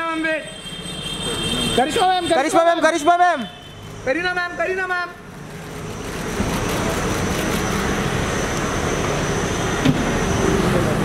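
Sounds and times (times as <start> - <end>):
car engine and road noise: 0.1 - 11.0.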